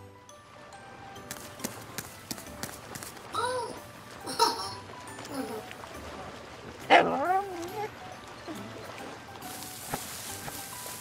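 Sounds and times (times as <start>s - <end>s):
dog barking and whining: 6.9s - 7.9s.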